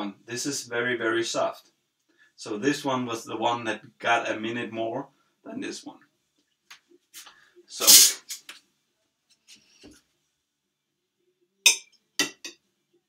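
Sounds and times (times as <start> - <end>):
sneeze-like burst of breath: 7.8 - 8.4.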